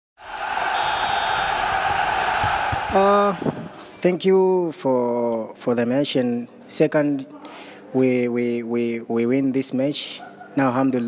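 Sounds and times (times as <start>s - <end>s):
crowd-like noise: 0.2s - 4.4s.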